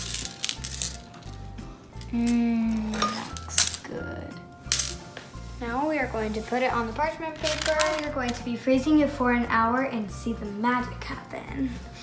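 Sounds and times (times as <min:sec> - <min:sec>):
candies clicking on ceramic plate: 0:00.0 - 0:03.9, 0:04.7 - 0:05.0, 0:07.3 - 0:08.4
background music: 0:00.0 - 0:12.0.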